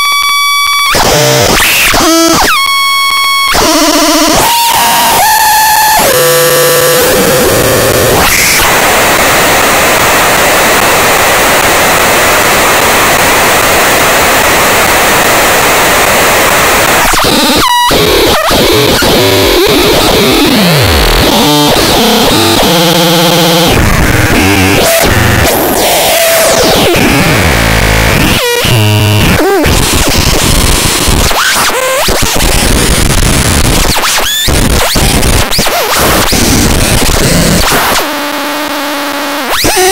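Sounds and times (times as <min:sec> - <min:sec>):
synthesized noise wash: 0:00.2 - 0:39.9
synth pitch glides and stepped tones: 0:17.3 - 0:30.2.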